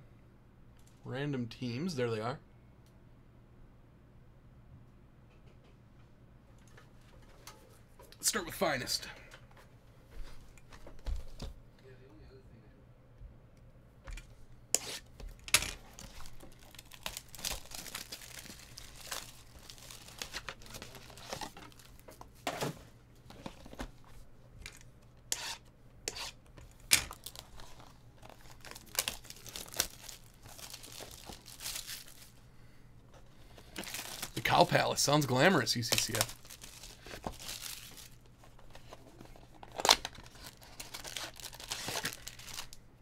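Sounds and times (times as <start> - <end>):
plastic shrink-wrap crinkling and tearing: 15.8 - 22.0, 27.1 - 32.4, 33.6 - 38.3, 39.7 - 42.8.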